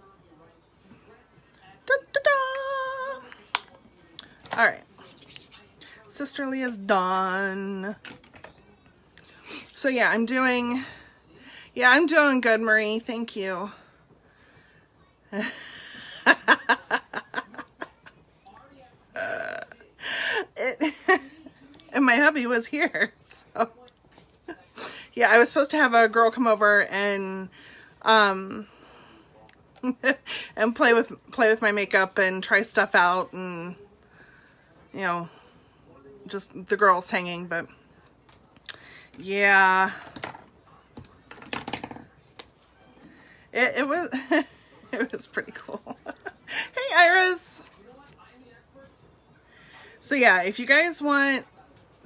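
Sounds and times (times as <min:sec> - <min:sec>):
woman laughing: 0:15.4 - 0:18.1, 0:43.9 - 0:46.9.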